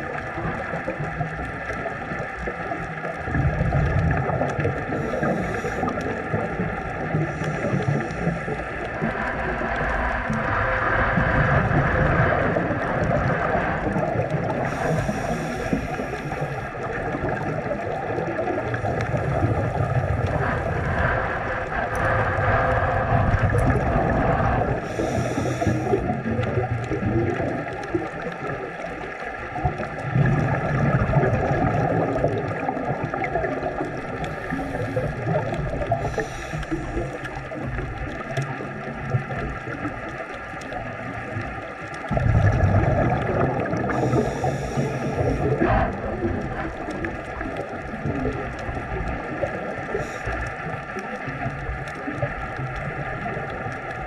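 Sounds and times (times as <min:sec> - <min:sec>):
exhaled bubbles underwater: 0:00.0 - 0:54.0
hissing regulator inhalations: 0:05.0 - 0:06.2, 0:14.6 - 0:16.7, 0:24.8 - 0:26.1, 0:36.0 - 0:37.3, 0:43.7 - 0:45.6.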